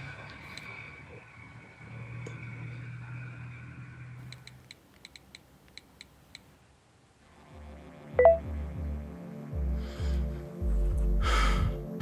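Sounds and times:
short high electronic beeps: 0:08.2 - 0:08.4.

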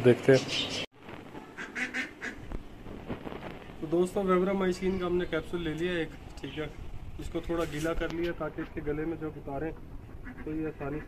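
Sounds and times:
ducks quacking: 0:01.4 - 0:02.5, 0:09.6 - 0:11.0.

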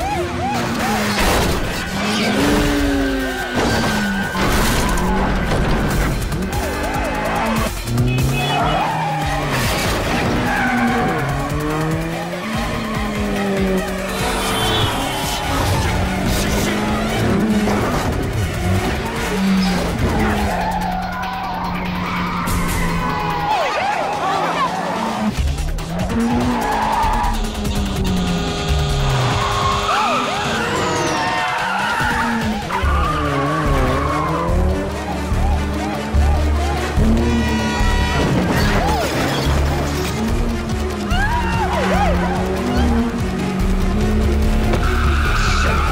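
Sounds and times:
background music: 0:00.0 - 0:45.9
car engines revving: 0:00.0 - 0:45.9
tyres squealing: 0:25.8 - 0:40.1.

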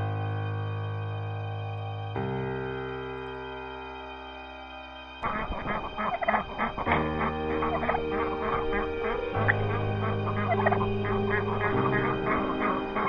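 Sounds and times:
soft background music: 0:00.0 - 0:13.0
turkeys and poultry calling: 0:05.2 - 0:13.0.

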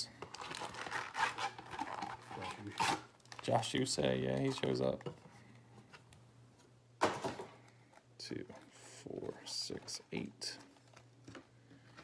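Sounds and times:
foil packs rustling: 0:00.3 - 0:04.8.

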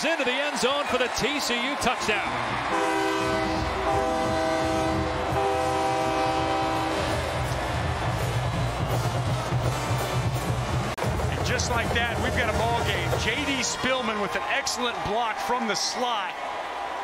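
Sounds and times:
stadium crowd rumble: 0:00.0 - 0:17.0
stadium music: 0:00.0 - 0:17.0
horn blasts: 0:02.2 - 0:10.5.

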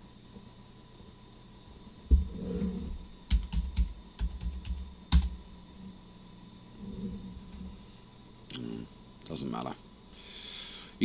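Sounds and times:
computer keyboard typing: 0:03.3 - 0:05.4.

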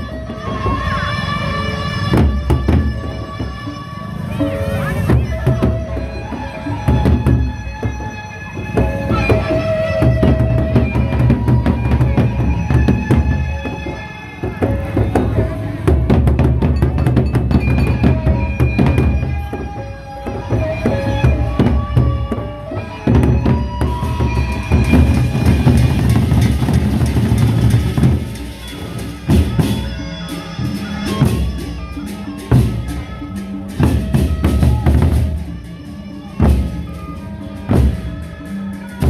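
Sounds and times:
cymbals clashing: 0:00.6 - 0:39.0
large drums beating: 0:02.1 - 0:03.7, 0:04.3 - 0:30.0, 0:30.6 - 0:38.4
barrel drums beaten fast: 0:23.1 - 0:29.9.

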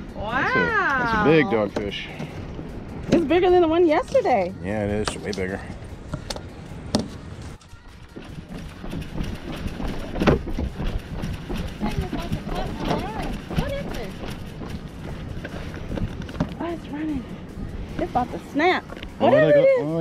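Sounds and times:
steady low rumble: 0:05.5 - 0:19.8.

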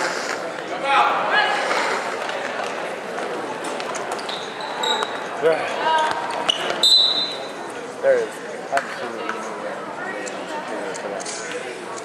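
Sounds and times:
players and spectators talking: 0:00.0 - 0:12.0
sneaker squeaks: 0:04.0 - 0:05.3, 0:05.9 - 0:07.6.

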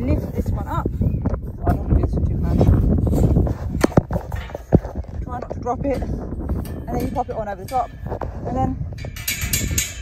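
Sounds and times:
wind rumble on microphone: 0:00.0 - 0:10.0
steel hurdles knocking: 0:09.0 - 0:10.0.

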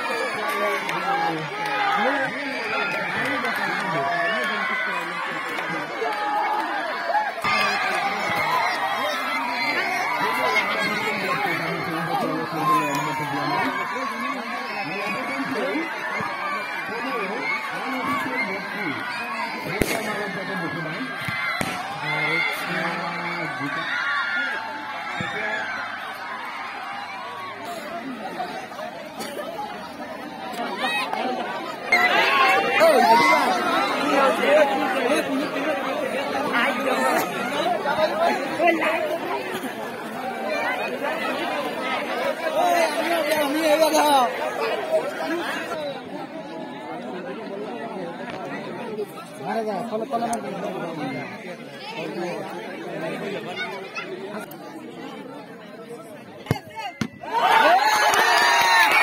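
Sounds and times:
crowd talking and calling out: 0:00.0 - 0:59.0
spectators chattering: 0:00.0 - 0:59.0.

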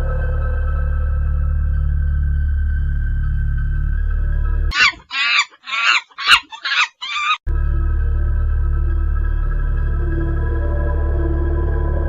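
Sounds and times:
shrill cackling calls: 0:04.7 - 0:07.4.

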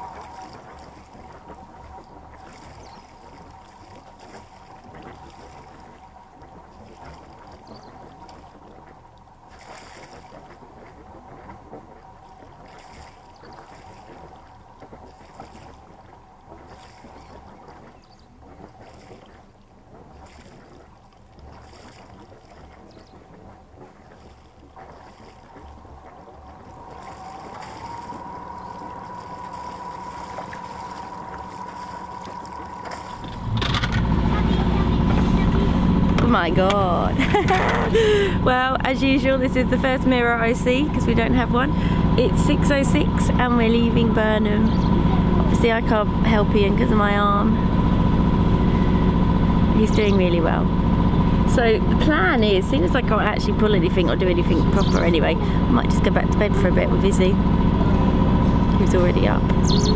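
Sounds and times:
boat engine running with whine: 0:00.0 - 0:59.9
loud low rumble: 0:25.7 - 0:59.9.

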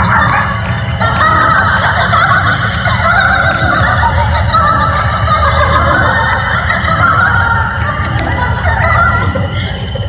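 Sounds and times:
electronic ambient music: 0:00.0 - 0:10.0.

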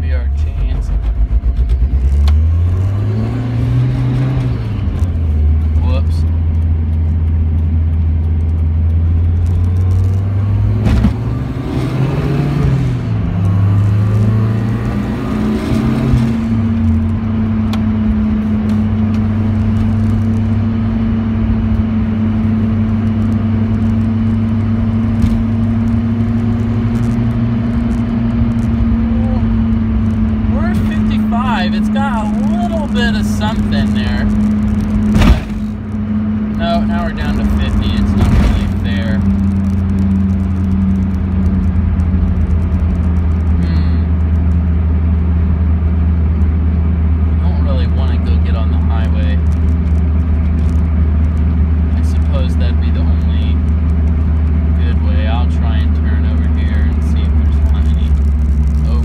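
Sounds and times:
vehicle engine accelerating: 0:00.0 - 0:59.0.

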